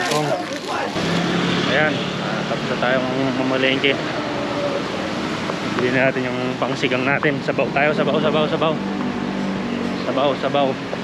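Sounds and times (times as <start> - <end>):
person's voice: 0.0 - 5.1, 5.8 - 8.8
street noise: 0.0 - 11.0.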